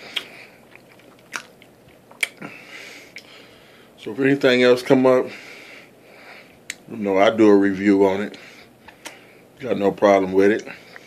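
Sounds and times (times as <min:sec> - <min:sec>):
person chewing: 0:00.0 - 0:03.4.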